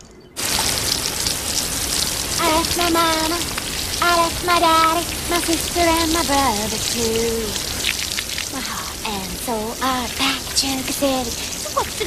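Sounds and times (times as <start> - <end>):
shower water spraying: 0.4 - 12.0
person singing: 2.4 - 7.6.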